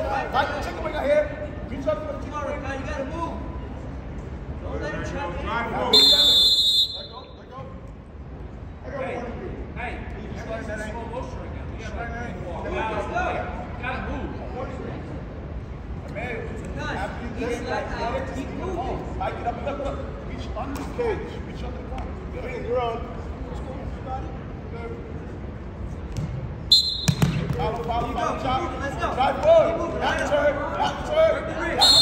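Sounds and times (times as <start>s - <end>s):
referee's whistle blast: 5.9s - 7.4s, 26.7s - 27.4s, 31.8s - 32.0s.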